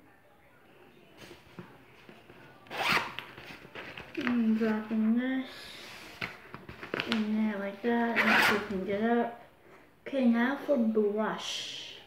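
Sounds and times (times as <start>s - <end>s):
zipper rasp: 2.7s - 3.2s, 8.2s - 8.7s.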